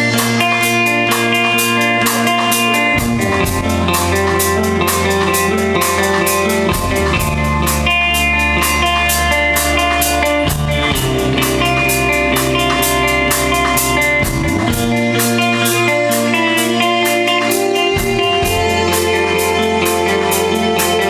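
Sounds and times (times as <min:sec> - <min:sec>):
bass line: 0:00.0 - 0:21.0
drum kit cymbal beat: 0:00.0 - 0:21.0
electric guitars: 0:00.0 - 0:21.0.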